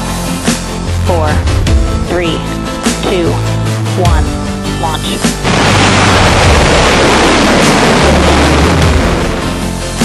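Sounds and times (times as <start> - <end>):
music soundtrack: 0.0 - 10.0.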